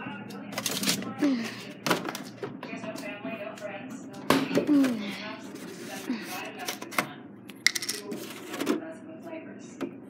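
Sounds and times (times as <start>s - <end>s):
object clattering on tiled counter: 7.7s - 8.7s.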